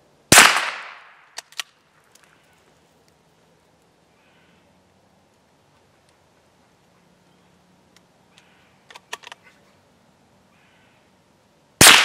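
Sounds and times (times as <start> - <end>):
rifle shot: 0.3 - 1.3, 11.8 - 12.0
faint clicks: 7.4 - 9.4.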